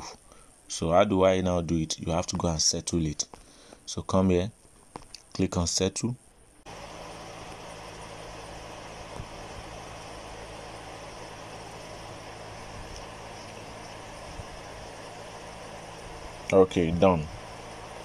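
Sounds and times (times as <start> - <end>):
steady hum with hiss: 0.0 - 18.0.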